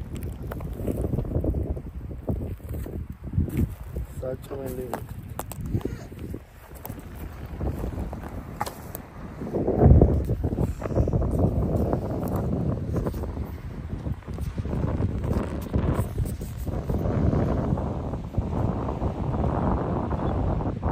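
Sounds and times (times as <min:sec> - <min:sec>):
wind buffeting microphone: 0:00.0 - 0:20.9.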